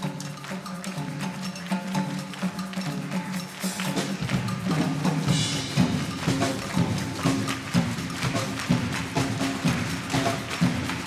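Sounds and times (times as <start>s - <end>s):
rhythmic hand clapping: 0.0s - 11.0s
wind band playing up-tempo music: 0.0s - 11.0s.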